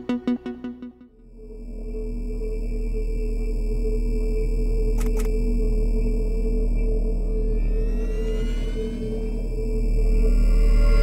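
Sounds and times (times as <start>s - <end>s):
deep synthesized drone: 0.0s - 11.0s.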